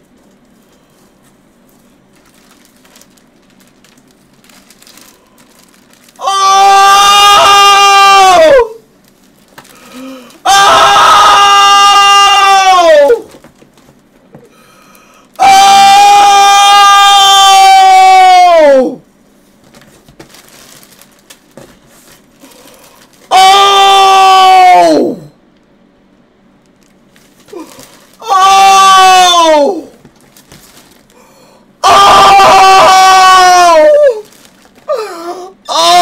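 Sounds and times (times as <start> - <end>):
young man yelling excitedly: 28.2 - 29.8.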